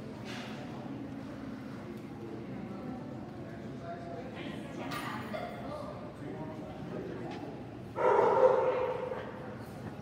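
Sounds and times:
dog barking: 8.0s - 9.2s.

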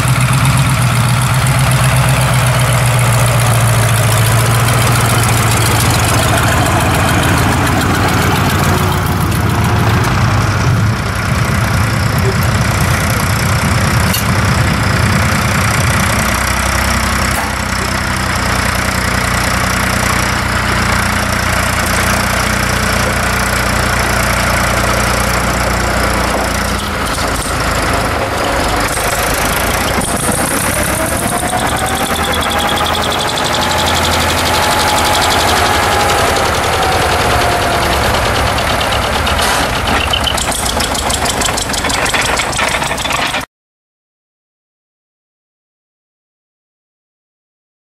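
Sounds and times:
tractor engine running: 0.0s - 43.5s.

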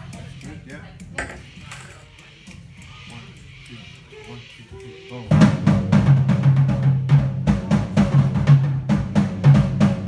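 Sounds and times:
murmuring voices: 0.0s - 5.7s.

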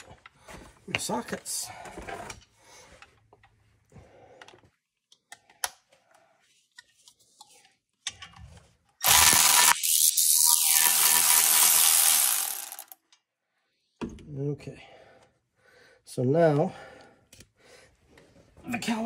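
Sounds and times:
cordless power tool running: 9.0s - 13.0s.

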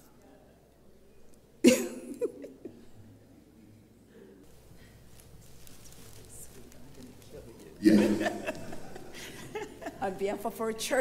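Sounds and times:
person coughing: 1.7s - 2.1s, 7.8s - 8.4s.

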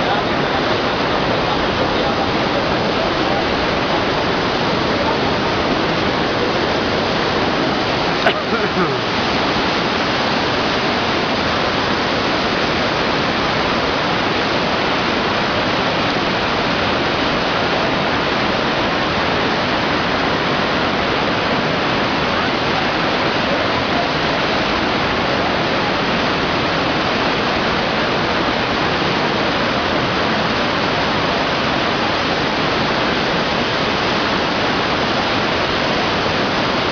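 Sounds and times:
flooded river rushing: 0.0s - 36.9s.

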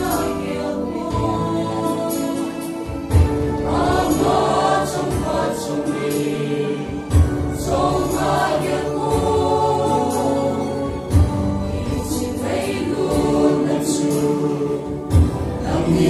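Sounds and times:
mixed choir singing held notes: 0.0s - 16.0s.

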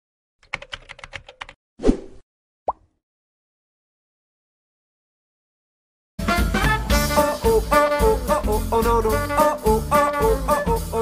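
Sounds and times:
computer keyboard key clicks: 0.4s - 1.6s.

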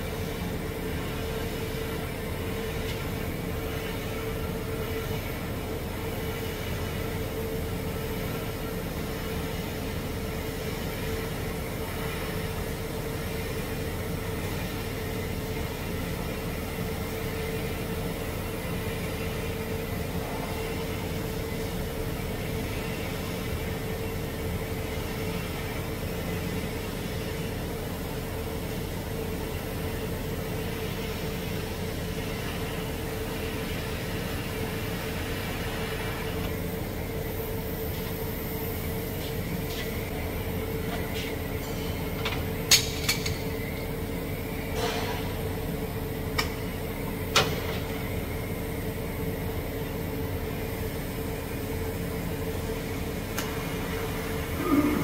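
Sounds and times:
welding arc hissing and humming: 0.0s - 55.0s.

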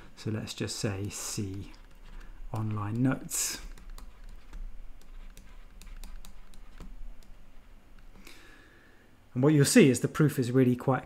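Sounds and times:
stylus tapping on tablet screen: 1.0s - 7.4s.

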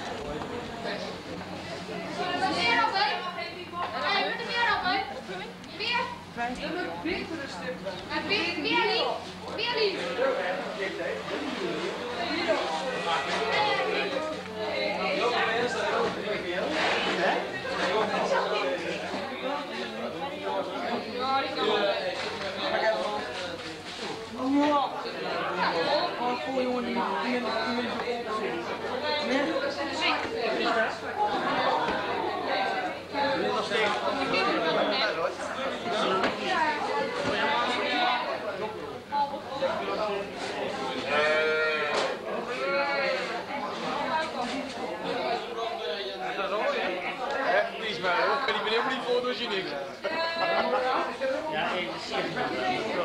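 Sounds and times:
indistinct chatter of voices: 0.0s - 53.0s.

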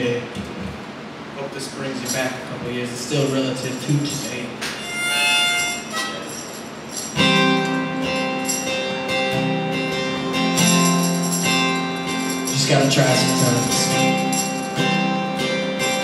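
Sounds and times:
harmonica chords: 4.8s - 16.0s
strummed acoustic guitar: 7.0s - 16.0s.

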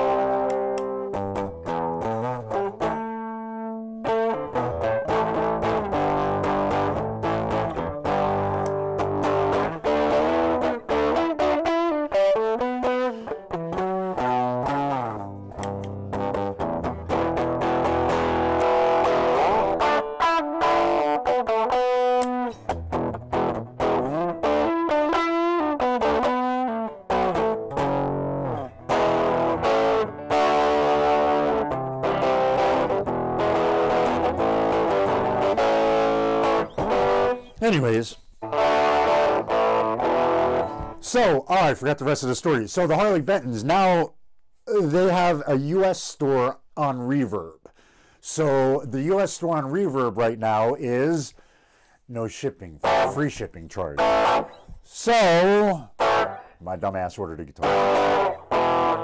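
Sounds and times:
distorted electric guitar riffs: 0.0s - 59.0s.

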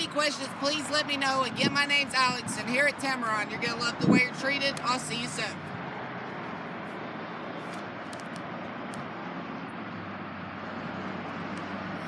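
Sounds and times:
low traffic-like hum: 0.0s - 12.0s.

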